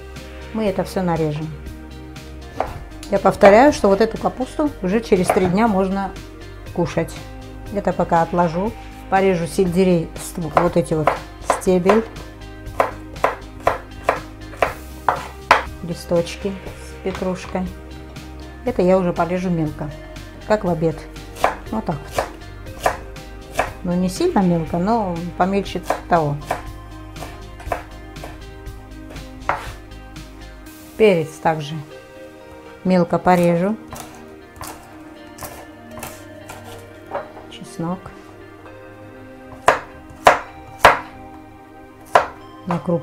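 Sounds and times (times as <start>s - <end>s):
background music: 0.0s - 43.0s
knife chopping on wooden board: 2.5s - 2.8s, 5.2s - 5.7s, 10.5s - 15.7s, 21.4s - 23.8s, 25.8s - 28.4s, 29.1s - 29.8s, 33.9s - 37.4s, 39.5s - 41.1s, 42.0s - 42.4s.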